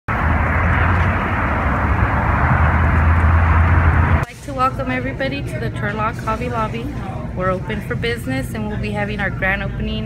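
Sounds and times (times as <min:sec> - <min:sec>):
low hum: 0:00.1 - 0:06.4
loud outdoor rumble and hiss: 0:00.1 - 0:10.0.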